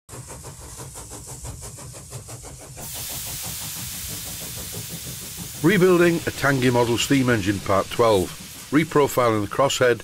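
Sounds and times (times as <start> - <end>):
steady hiss of steam: 0.1 - 10.0
steam engine chugging: 0.1 - 10.0.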